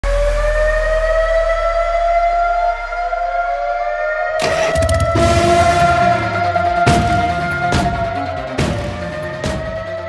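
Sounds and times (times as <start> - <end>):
rising siren-like tone: 0.0 - 10.0.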